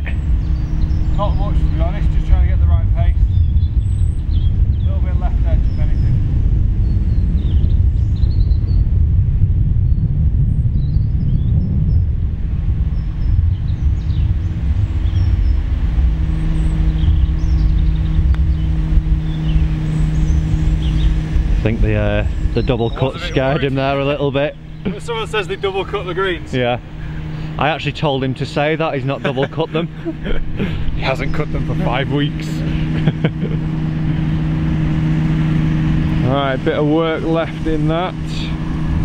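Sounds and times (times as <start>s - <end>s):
heavy low rumble: 0.0s - 39.0s
steady engine hum: 0.0s - 39.0s
wind buffeting microphone: 0.0s - 39.0s.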